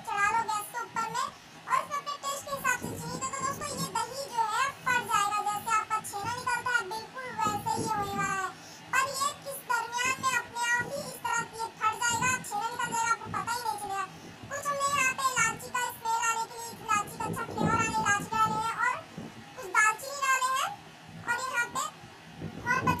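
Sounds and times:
child singing: 0.0 - 19.0, 19.6 - 21.9, 22.6 - 23.0.

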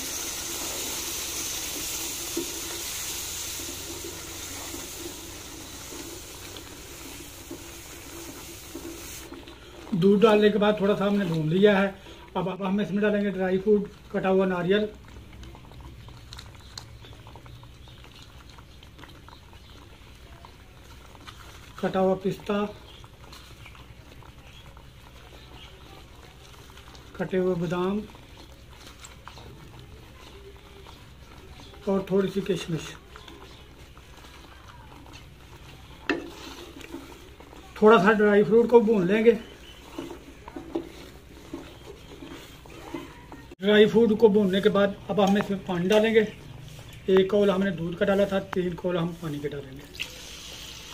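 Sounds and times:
thick mixture bubbling and popping: 0.0 - 50.9
wooden spoon stirring in pot: 0.0 - 50.9.

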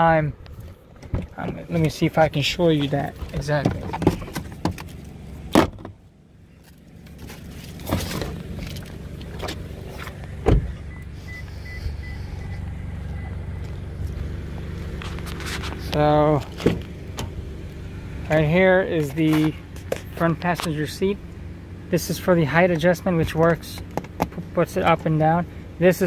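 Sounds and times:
steady low hum: 0.0 - 26.0
car door thump: 5.5 - 6.0, 10.4 - 10.9
footsteps: 6.6 - 17.0.

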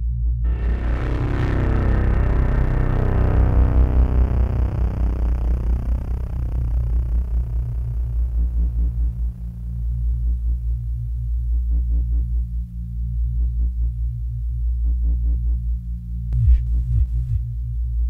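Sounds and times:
deep electronic drone: 0.0 - 18.0
synthesized noise wash: 0.5 - 10.9.

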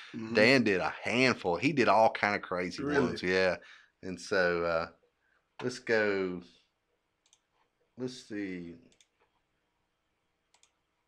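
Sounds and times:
faint clicks: 7.2 - 7.7, 8.8 - 9.4, 10.5 - 10.8.

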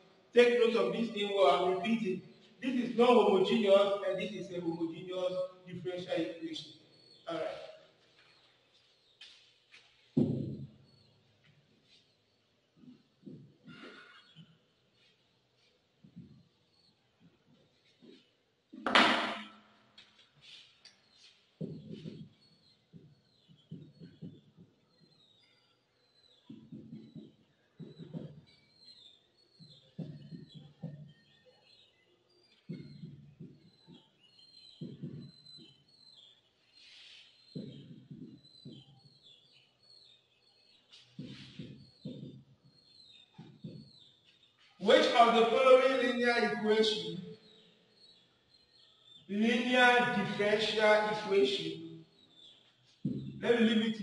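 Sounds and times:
sharp knock: 18.8 - 19.6
marker scratching on whiteboard: 20.4 - 25.2, 26.4 - 31.4, 40.8 - 45.5.

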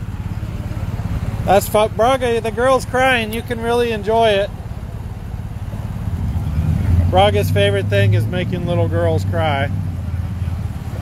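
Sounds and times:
street traffic passing: 0.0 - 11.0
vehicle engine rumble: 0.0 - 11.0.

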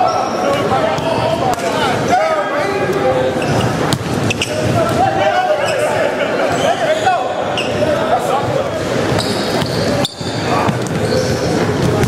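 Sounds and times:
people talking and laughing: 0.0 - 12.0
basketball bouncing: 3.7 - 4.8, 9.1 - 12.0.

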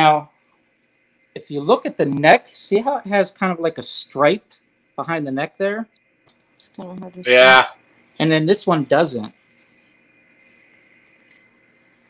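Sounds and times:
thin high hum: 0.0 - 12.0.

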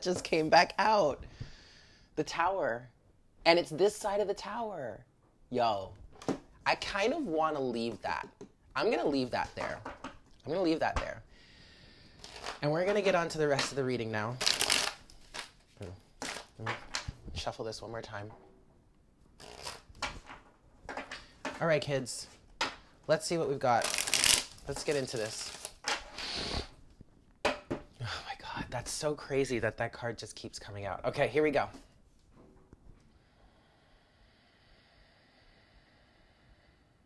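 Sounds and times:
cards being shuffled: 12.2 - 17.2, 19.4 - 21.3, 23.8 - 26.7.

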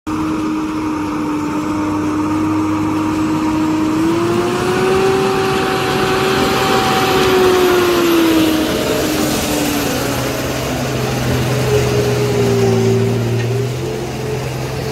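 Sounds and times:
diesel truck engine labouring: 0.1 - 14.9.

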